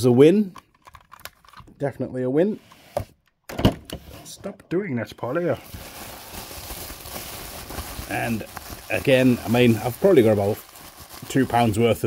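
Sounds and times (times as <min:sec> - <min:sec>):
bubble wrap crinkling: 0:05.6 - 0:12.0.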